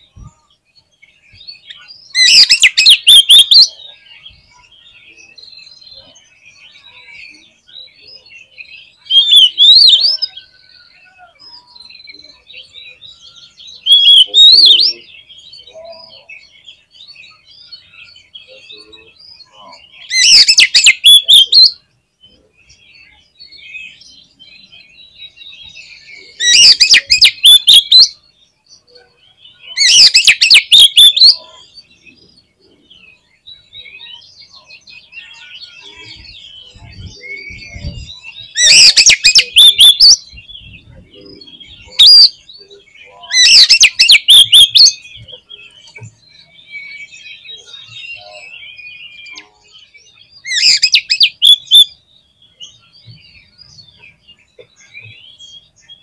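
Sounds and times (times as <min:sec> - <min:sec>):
bird singing rapid notes: 0:00.0 - 0:56.0
quiet bird twittering: 0:00.0 - 0:56.0.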